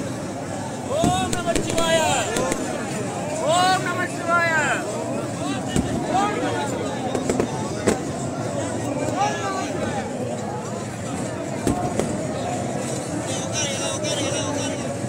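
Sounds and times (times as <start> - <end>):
crowd voices calling out: 0.0 - 15.0
noisy hubbub: 0.0 - 15.0
sharp cracks: 1.0 - 2.9.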